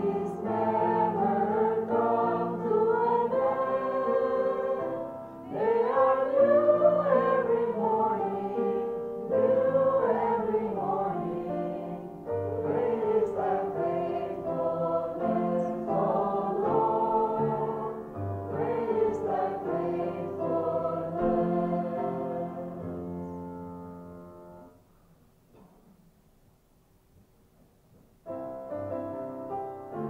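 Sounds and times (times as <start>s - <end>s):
girls singing worship song: 0.0s - 23.3s
steady held chords: 0.0s - 25.0s.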